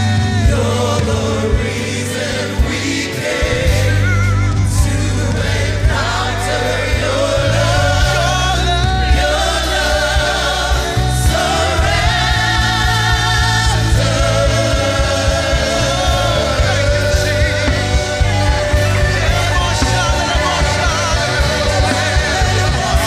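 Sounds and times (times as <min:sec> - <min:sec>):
live band with drums: 0:00.0 - 0:23.0
voices singing in harmony: 0:00.0 - 0:23.0.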